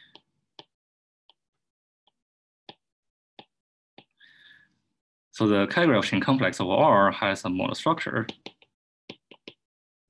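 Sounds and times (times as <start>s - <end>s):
stylus tapping on glass screen: 8.3s - 9.6s.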